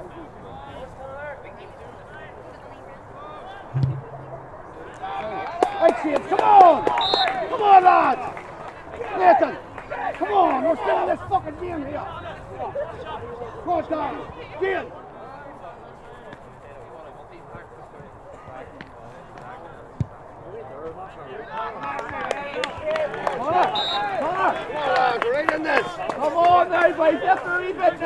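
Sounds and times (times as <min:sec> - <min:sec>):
sharp thud: 0:03.8 - 0:04.9.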